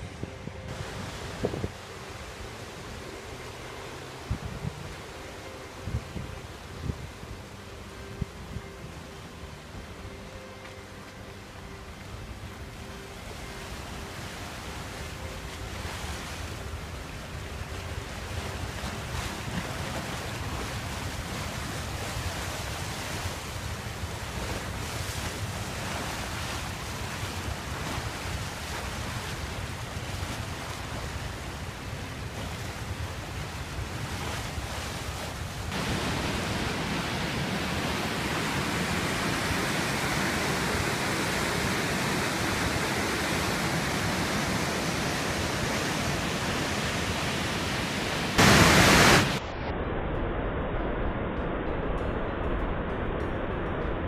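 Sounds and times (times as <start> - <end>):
wind on microphone: 0.0 - 10.3, 12.3 - 54.0
water rushing over concrete: 0.7 - 7.9, 12.2 - 49.4.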